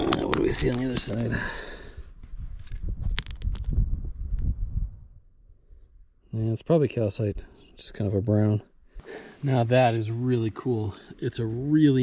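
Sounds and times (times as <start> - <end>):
rock handled in the hand: 0.0 - 1.4, 2.2 - 4.7.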